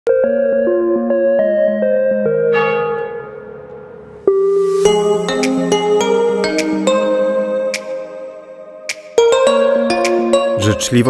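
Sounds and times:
chiming melody: 0:02.0 - 0:08.6
bell ringing: 0:02.4 - 0:06.6.

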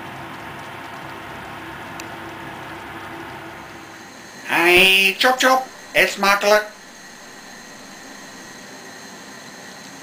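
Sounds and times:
extractor fan hissing: 0:01.8 - 0:10.0
faint high whines: 0:03.1 - 0:10.0.

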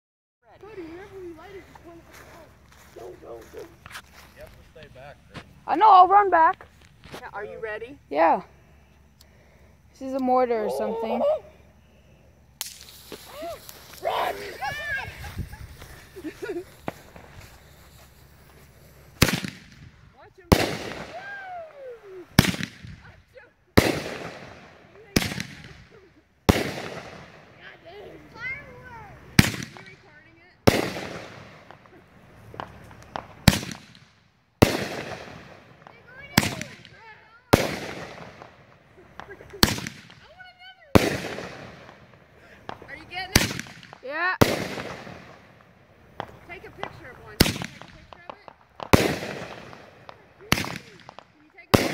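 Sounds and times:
firework bangs: 0:11.8 - 0:51.9.

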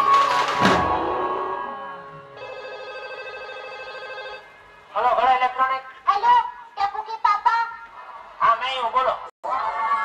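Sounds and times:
warbling electronic ringing tone: 0:02.4 - 0:04.4.

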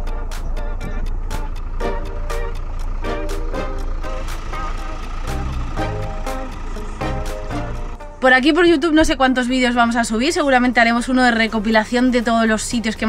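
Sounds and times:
background music with beat: 0:00.0 - 0:08.3
low steady rumble: 0:00.0 - 0:13.0.

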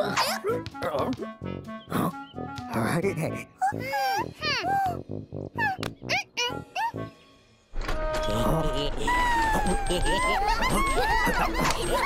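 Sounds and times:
playful background music: 0:00.0 - 0:12.0
cartoon squeaky vocalizations: 0:03.6 - 0:05.0, 0:05.6 - 0:07.0, 0:08.6 - 0:12.0.

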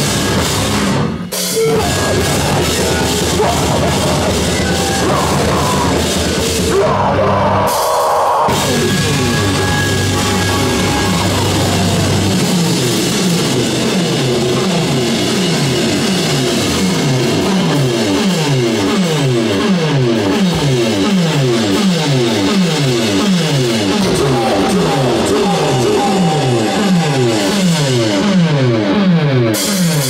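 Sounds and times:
electric guitar falling pitch sweep: 0:22.8 - 0:30.0.

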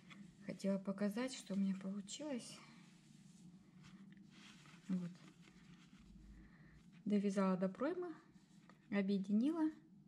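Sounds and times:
rustle of fabric being handled: 0:00.0 - 0:09.6.

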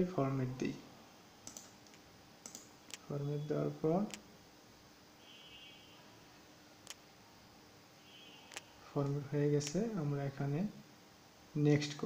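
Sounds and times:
person speaking: 0:02.9 - 0:04.3, 0:08.8 - 0:10.8.

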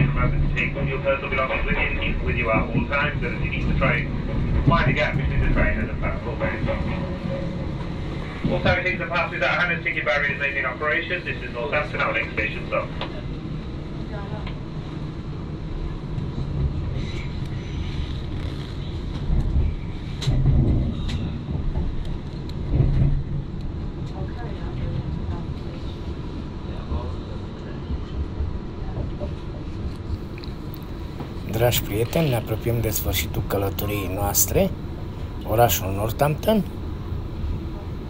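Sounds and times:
train rumbling on rails: 0:00.0 - 0:38.0.

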